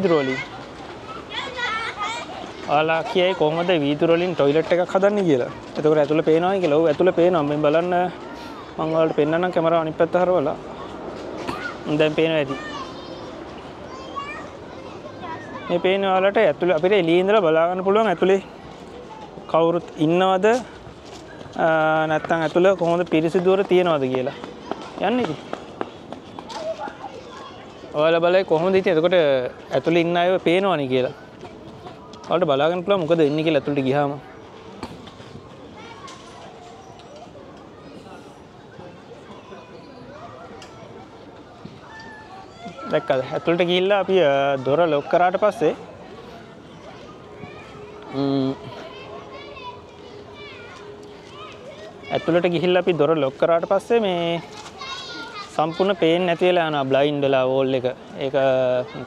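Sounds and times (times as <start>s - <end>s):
distant children calling and playing: 0.0s - 59.0s
outdoor background noise: 0.0s - 59.0s
footsteps on paving: 22.2s - 27.5s.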